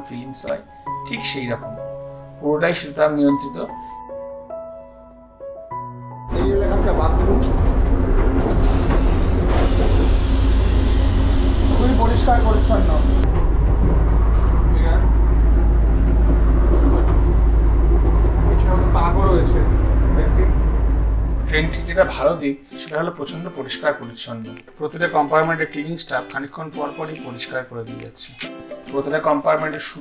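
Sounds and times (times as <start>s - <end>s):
electric train rumble: 6.3s - 22.3s
toilet flush hissing: 7.9s - 13.3s.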